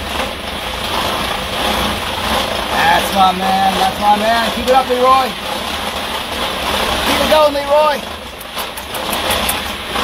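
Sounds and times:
treadmill belt rumbling: 0.0 - 10.0.

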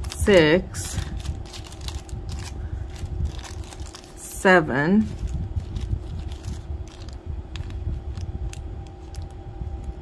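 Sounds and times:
plastic bags crinkling: 0.0 - 9.4
faint steady hum: 0.0 - 10.0.

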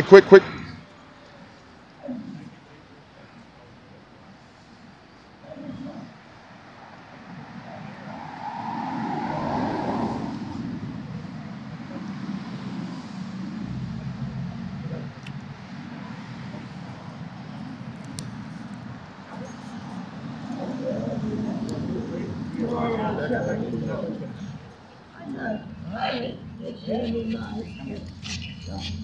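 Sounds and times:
faint murmured voices: 0.0 - 29.0
motor vehicle rumble: 2.1 - 29.0.

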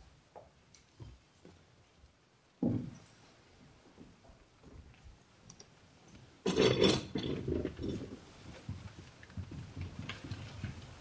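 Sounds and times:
knocks: 2.6 - 3.0
footsteps: 2.6 - 5.2, 6.1 - 11.0
clatter and scrape: 6.4 - 11.0
people shuffling: 7.5 - 11.0.

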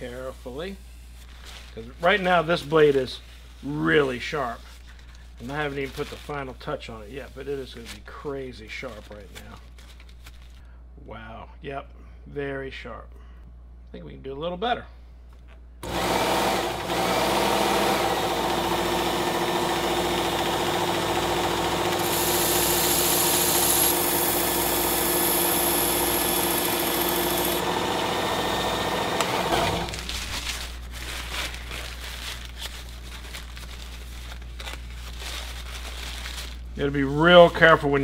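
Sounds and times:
faint rustling and handling: 0.0 - 10.7, 29.9 - 38.0
electric belt sharpener running: 15.8 - 30.0.

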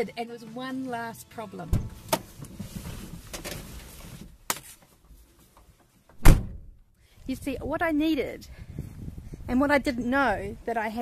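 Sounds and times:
car door slamming: 6.2 - 6.7.

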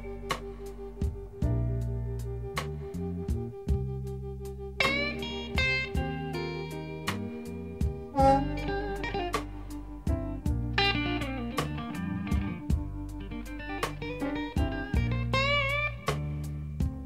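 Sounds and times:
lead guitar bending notes: 0.0 - 4.0, 4.6 - 17.0
steady drum beat: 0.0 - 4.2, 4.8 - 6.4, 7.1 - 17.0
sustained bass: 0.0 - 17.0.

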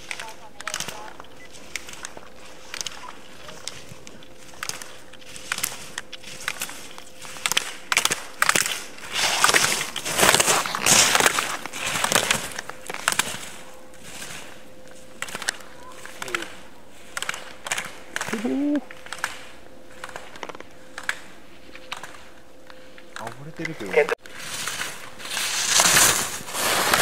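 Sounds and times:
skis scraping across snow: 0.0 - 18.4, 19.0 - 27.0.

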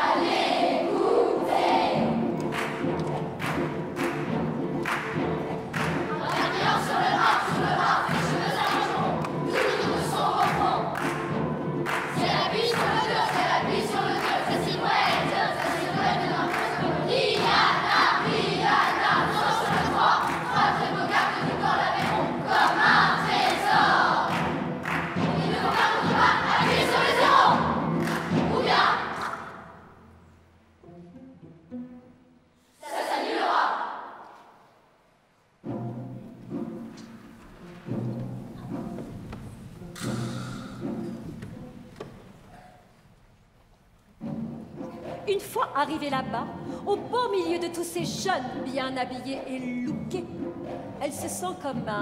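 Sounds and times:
children's chorus chanting: 0.0 - 30.0, 32.8 - 34.6
instrumental backing with percussive hits: 1.8 - 30.2, 35.6 - 42.4, 44.1 - 52.0.

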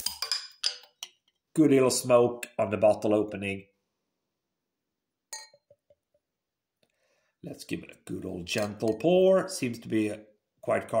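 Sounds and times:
bottle clinking against glass: 5.3 - 5.8.

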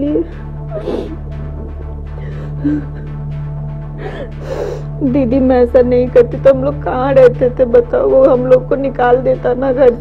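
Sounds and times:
woman crying and sobbing: 0.0 - 5.1
background music with low drone: 0.0 - 10.0.

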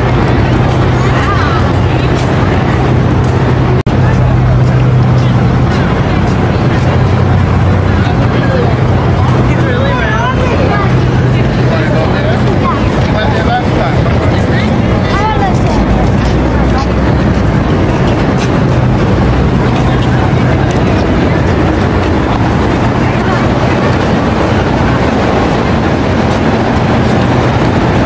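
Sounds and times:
chatter of passers-by: 0.0 - 28.0
steady low hum: 0.0 - 28.0.

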